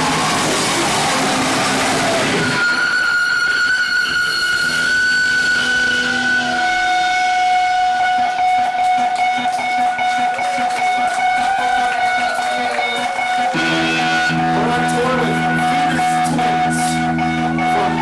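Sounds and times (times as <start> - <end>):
lower feedback tone: 0.0 - 10.4, 13.5 - 18.0
guitar amplifier feedback ringing: 0.0 - 11.4, 12.8 - 18.0
full band playing: 0.0 - 18.0.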